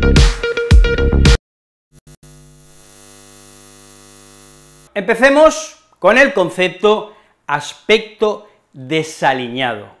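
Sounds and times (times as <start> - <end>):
neon sign buzzing hum: 2.0 - 4.9.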